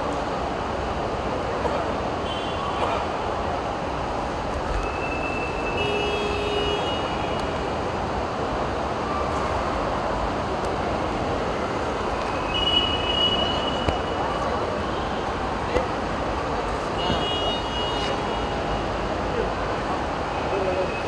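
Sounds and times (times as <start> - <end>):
traffic hum and rush: 0.0 - 21.0.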